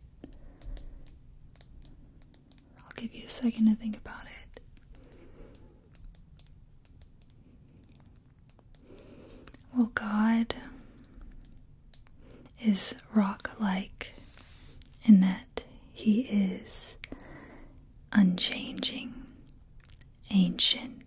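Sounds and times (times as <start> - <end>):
faint clicks: 0.2 - 15.3, 17.0 - 17.5
woman speaking softly: 2.8 - 4.6, 9.6 - 10.8, 12.6 - 14.2, 15.0 - 17.0, 18.1 - 19.3, 20.2 - 21.0.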